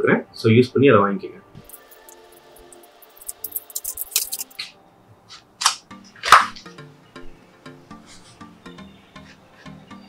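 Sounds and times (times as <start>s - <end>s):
music with plucked notes: 5.8s - 10.0s.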